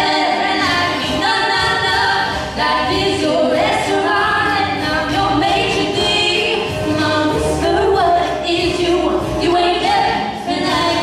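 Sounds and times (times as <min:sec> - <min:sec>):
women singing into microphones: 0:00.0 - 0:11.0.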